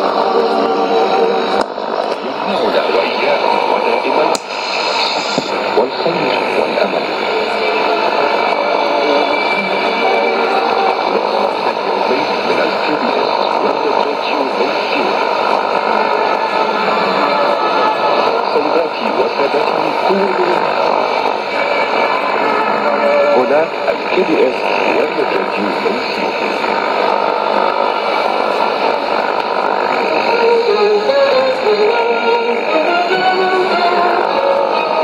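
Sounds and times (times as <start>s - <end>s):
radio static hiss: 0.0s - 35.0s
radio voice: 0.0s - 35.0s.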